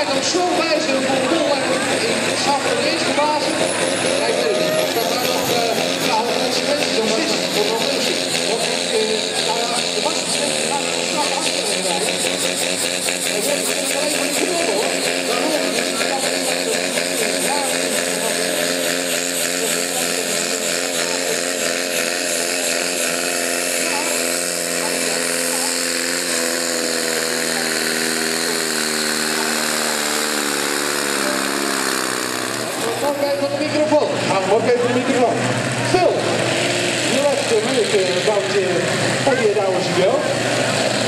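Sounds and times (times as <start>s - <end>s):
tractor engine at full throttle: 0.0s - 41.0s.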